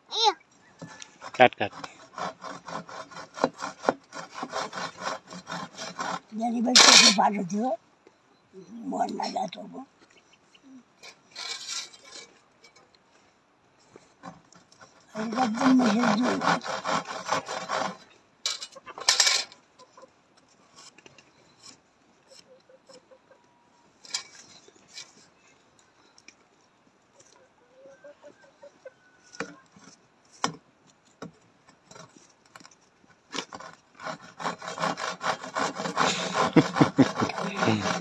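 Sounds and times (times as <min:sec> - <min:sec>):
hand saw rasping through log: 0:00.8 - 0:07.6, 0:11.0 - 0:12.4, 0:14.2 - 0:19.6, 0:31.2 - 0:38.0.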